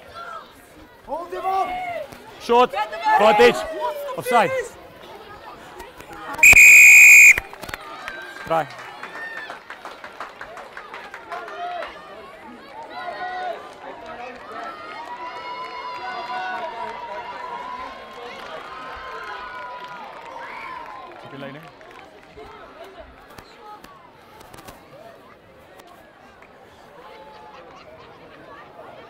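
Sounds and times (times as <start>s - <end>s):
referee whistle blast: 6.4s - 7.5s.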